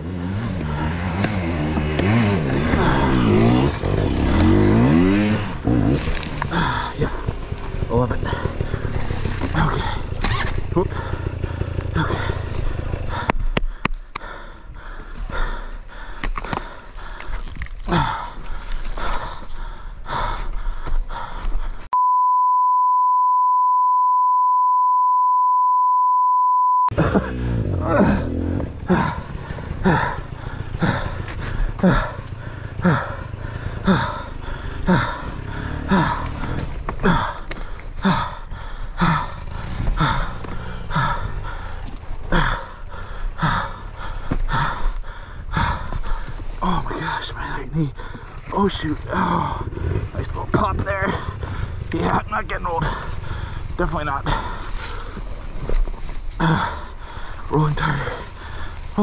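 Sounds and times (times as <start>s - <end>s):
person breathing heavily: 0.4s - 22.0s, 27.0s - 59.0s
person groaning: 2.0s - 13.3s, 17.8s - 18.4s, 26.9s - 41.6s, 42.3s - 55.1s, 56.3s - 59.0s
electronic bleep tone: 22.0s - 26.9s.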